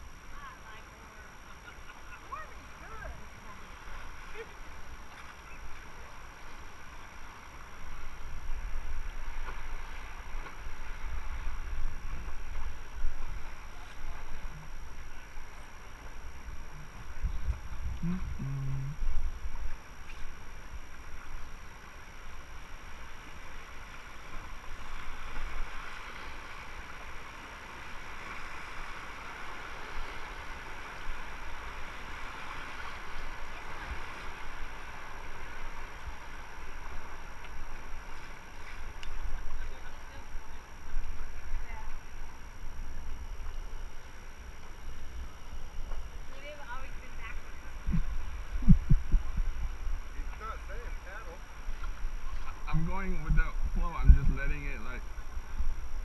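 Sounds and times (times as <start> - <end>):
river water rushing: 0.0 - 56.0
wind rumble on microphone: 2.4 - 56.0.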